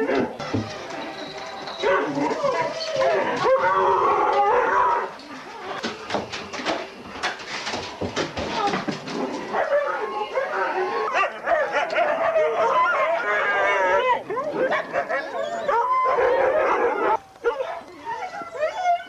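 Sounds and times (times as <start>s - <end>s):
dogs yipping: 0.0s - 5.0s, 9.4s - 19.0s
dogs howling and whining: 0.0s - 5.8s, 8.6s - 19.0s.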